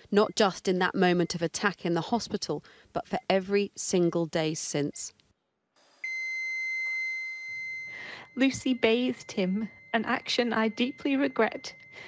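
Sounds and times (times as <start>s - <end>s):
high-pitched electronic alarm tone: 6.0s - 12.0s.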